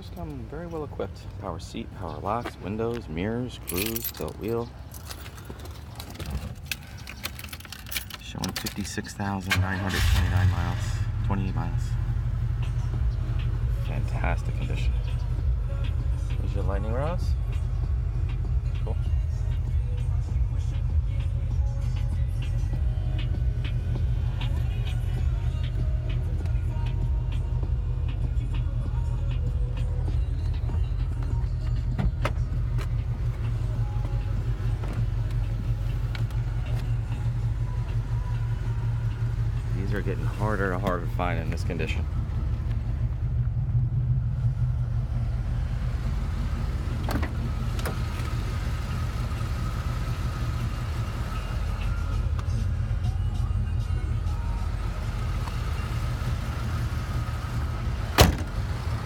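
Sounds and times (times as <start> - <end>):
engine idling low rumble: 0.0 - 59.0.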